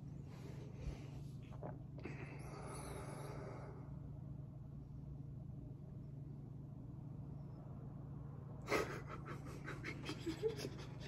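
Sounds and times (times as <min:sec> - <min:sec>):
faint steady hum: 0:00.0 - 0:11.0
man laughing breathily: 0:08.6 - 0:11.0.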